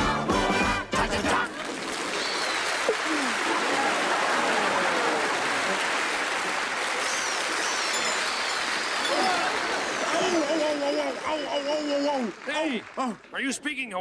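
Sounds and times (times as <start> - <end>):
audience applauding and cheering: 1.0 - 14.0.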